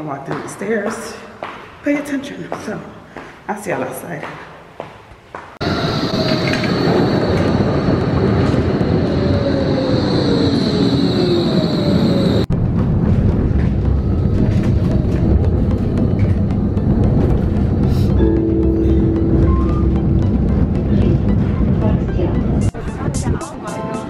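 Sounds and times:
tram squealing: 0:05.6 - 0:12.5, 0:14.0 - 0:23.0
tram motor whine: 0:05.6 - 0:22.8.

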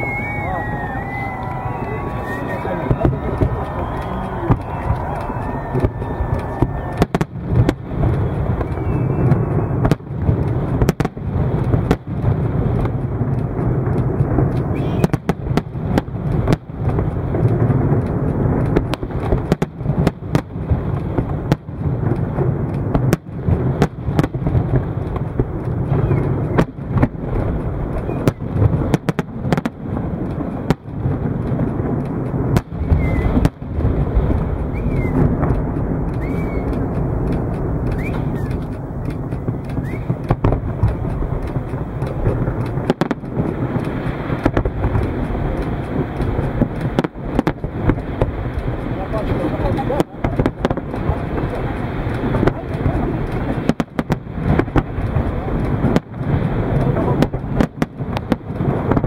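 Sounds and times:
fireworks bangs: 0:00.0 - 0:59.0
low rumble: 0:00.0 - 0:59.0.

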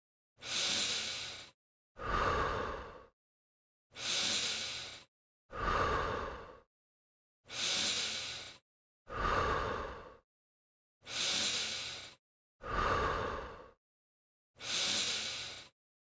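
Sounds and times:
person breathing deeply: 0:00.4 - 0:03.2, 0:03.9 - 0:06.7, 0:07.4 - 0:10.3, 0:11.0 - 0:13.8, 0:14.6 - 0:15.8.

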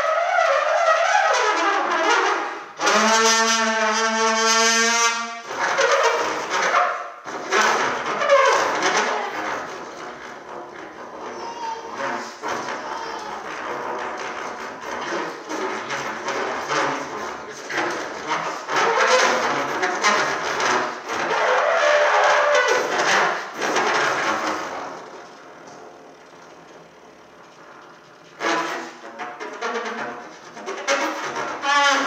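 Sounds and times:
breathy fluttering trumpet: 0:00.0 - 0:32.0.

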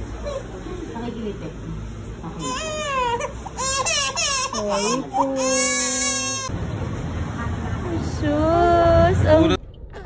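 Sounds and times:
baby crying: 0:02.4 - 0:06.5.

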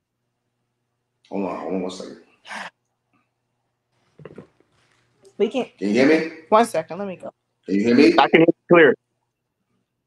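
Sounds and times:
faint steady hum: 0:00.0 - 0:10.0
man's voice over video call: 0:05.8 - 0:06.4, 0:07.7 - 0:09.0.

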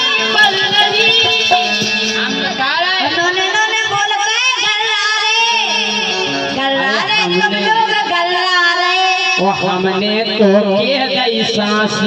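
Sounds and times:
harmonium: 0:00.0 - 0:12.0
person singing folk song: 0:00.0 - 0:12.0.

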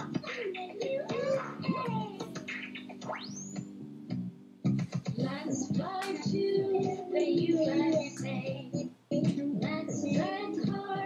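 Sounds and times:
children's song instrumental: 0:00.0 - 0:03.7, 0:04.8 - 0:11.0.

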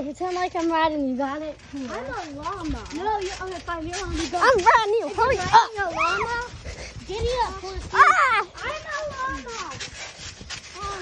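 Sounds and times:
feet bouncing on trampoline: 0:00.0 - 0:11.0.

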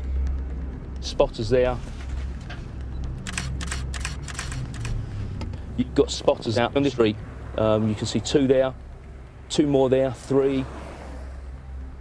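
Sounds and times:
low vehicle interior rumble: 0:00.0 - 0:12.0
camera shutter clicks: 0:03.2 - 0:05.0.

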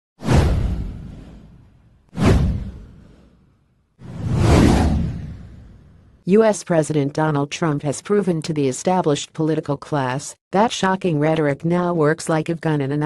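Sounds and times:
whoosh sound effects: 0:04.0 - 0:06.0.

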